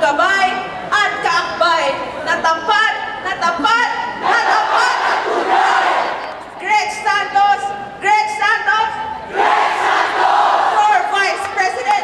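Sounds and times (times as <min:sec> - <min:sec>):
woman shouting through microphone: 0:06.6 - 0:09.1, 0:10.7 - 0:12.0.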